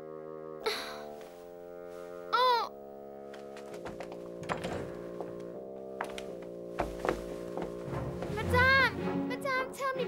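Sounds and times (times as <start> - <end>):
sustained music chord: 0.0 - 9.4
light thuds: 3.3 - 8.4.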